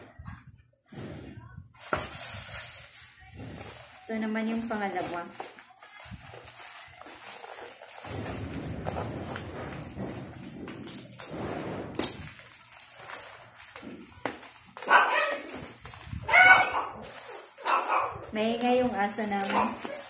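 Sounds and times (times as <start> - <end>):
bubble wrap rustling and crinkling: 1.8 - 20.0
dog barking: 14.8 - 15.5, 16.3 - 18.3, 19.4 - 20.0
dog whining: 16.2 - 20.0.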